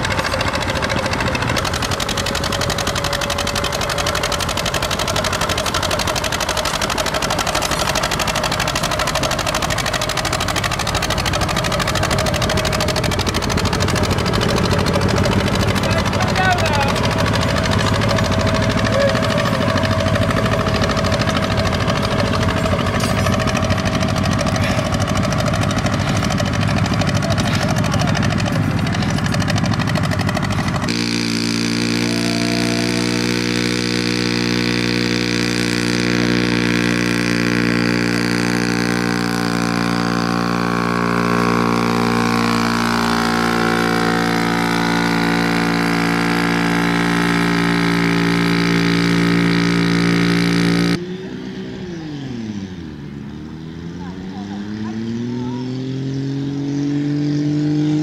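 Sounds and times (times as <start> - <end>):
tractor engine running steadily: 0.0 - 55.6
tractor engines running roughly: 0.0 - 58.0.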